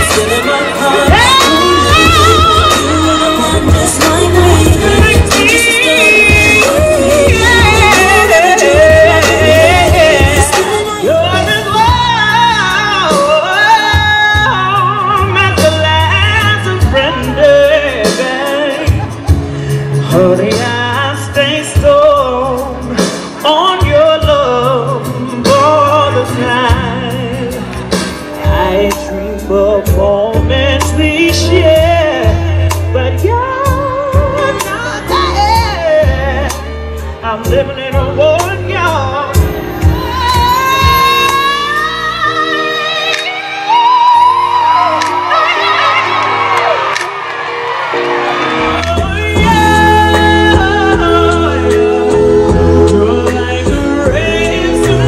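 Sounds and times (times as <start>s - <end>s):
woman singing into microphone: 0.0s - 19.3s, 28.4s - 46.8s, 48.8s - 55.0s
bass: 0.0s - 55.0s
drums: 0.0s - 55.0s.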